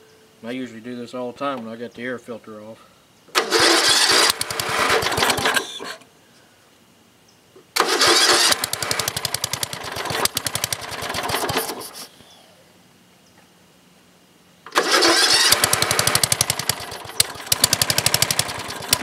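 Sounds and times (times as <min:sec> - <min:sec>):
lawn tractor engine starting: 0:03.3 - 0:06.0, 0:07.8 - 0:12.1, 0:14.7 - 0:19.0.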